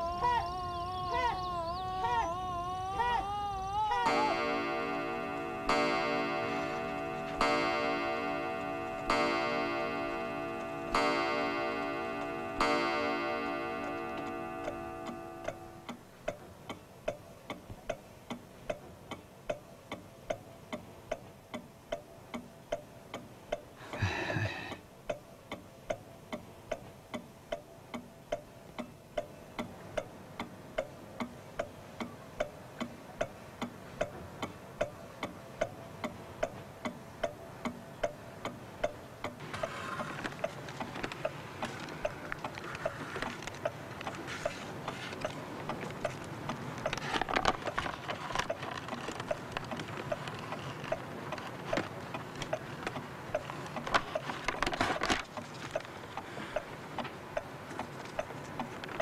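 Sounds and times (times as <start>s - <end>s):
clock ticking: 3.8s - 59.0s
mantel clock striking: 4.0s - 17.5s, 27.5s - 47.0s.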